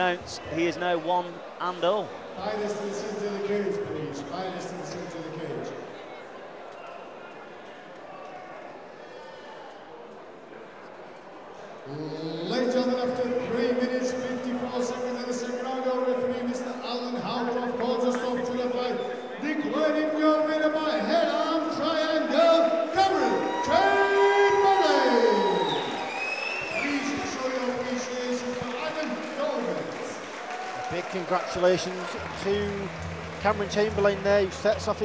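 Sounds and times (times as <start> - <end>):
ring announcer announcing: 12.5 - 25.9, 26.7 - 30.2, 30.8 - 35.0.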